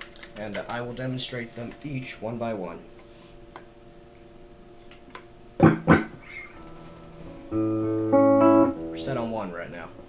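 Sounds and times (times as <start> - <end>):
electric guitar strums: 5.6 - 9.4
electric guitar note ringing: 5.6 - 9.5.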